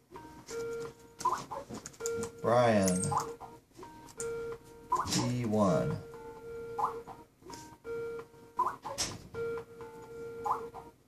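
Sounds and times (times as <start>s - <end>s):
repeating background tones: 0.0s - 11.0s
laptop keyboard typing: 0.5s - 4.3s.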